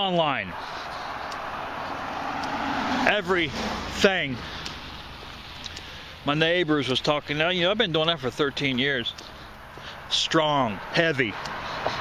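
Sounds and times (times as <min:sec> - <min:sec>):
road vehicle passing: 0:00.0 - 0:12.0.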